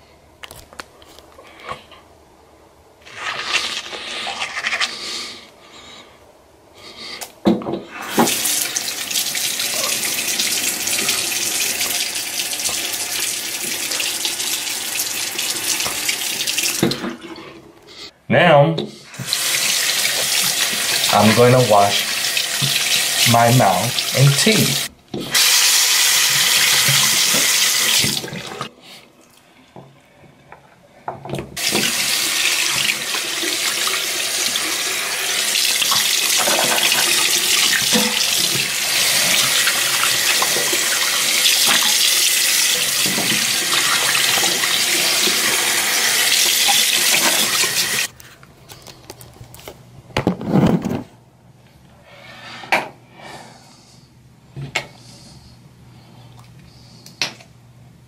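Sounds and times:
faucet running into sink: 0:08.0 - 0:17.2, 0:19.2 - 0:28.7, 0:31.6 - 0:48.1.

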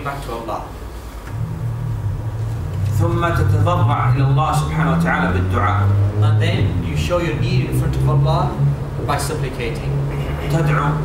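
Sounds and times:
low steady rumble: 0:00.9 - 0:11.0.

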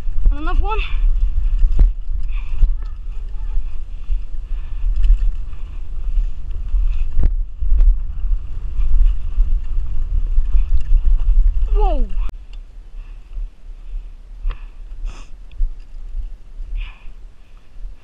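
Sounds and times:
tyre noise on dirt: 0:00.0 - 0:12.4
wind buffeting microphone: 0:00.0 - 0:18.0.

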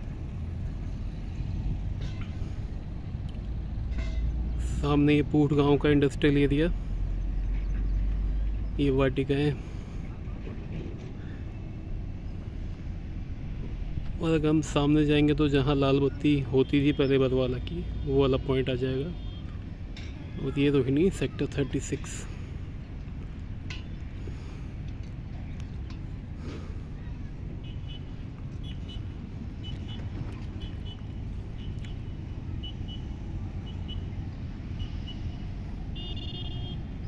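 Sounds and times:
low outdoor background rumble: 0:00.0 - 0:37.0.

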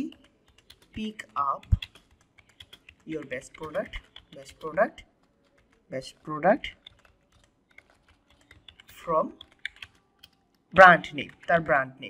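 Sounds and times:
soft keyboard typing: 0:00.0 - 0:12.0.

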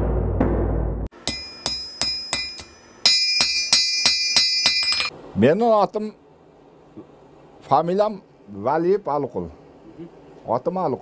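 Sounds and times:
hammer striking metal on anvil: 0:01.1 - 0:05.1.

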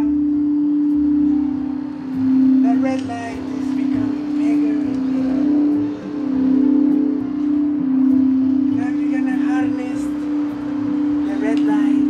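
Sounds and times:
faint higher ringing tone: 0:00.0 - 0:12.0
singing bowl tone: 0:00.0 - 0:12.0.

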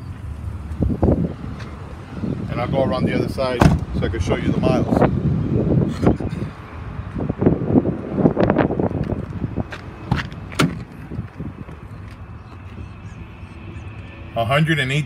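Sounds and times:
footsteps on asphalt: 0:00.6 - 0:01.9, 0:08.0 - 0:14.1
handling noise: 0:08.9 - 0:12.8.

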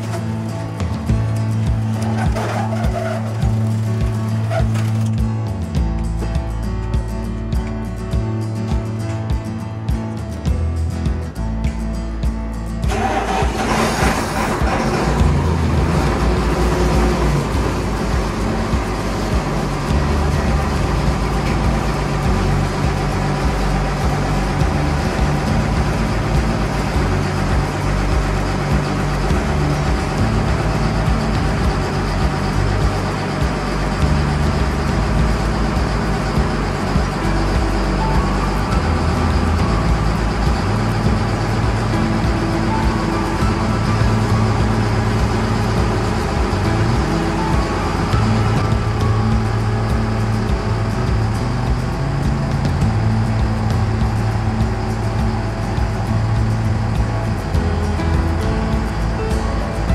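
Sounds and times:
music playing: 0:00.0 - 0:59.9
tractor diesel engine running: 0:00.0 - 0:59.9.

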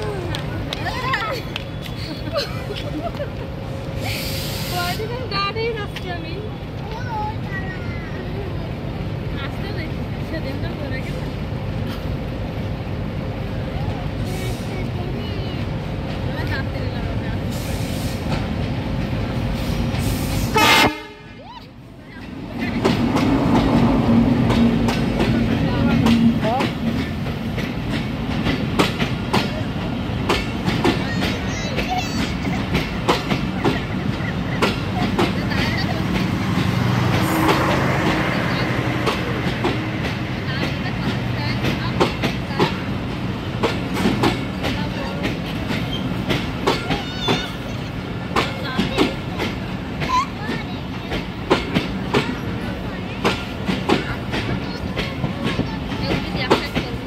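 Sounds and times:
train coaches rumbling past: 0:00.0 - 0:57.0.

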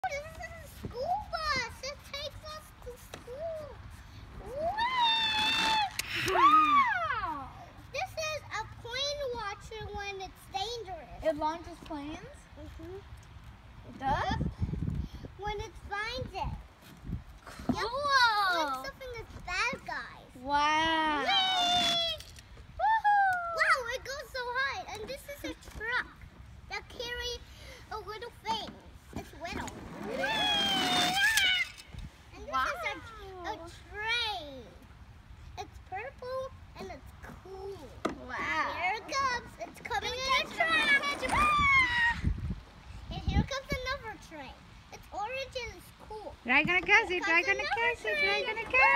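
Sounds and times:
child's high-pitched squeal: 0:04.4 - 0:07.8, 0:20.7 - 0:24.4, 0:30.0 - 0:33.4, 0:40.1 - 0:42.6.

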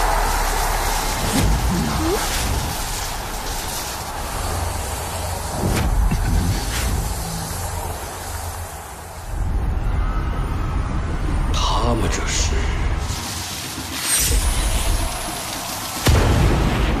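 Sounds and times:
rushing noise: 0:00.0 - 0:17.0.

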